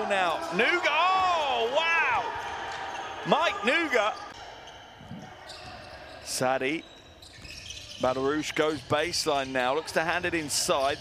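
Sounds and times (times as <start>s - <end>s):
indoor hall background: 0.0s - 11.0s.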